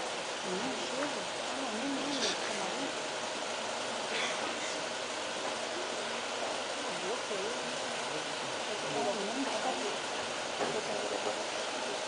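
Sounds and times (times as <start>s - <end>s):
steady noisy hiss: 0.0s - 12.0s
voices of gathered people: 0.3s - 12.0s.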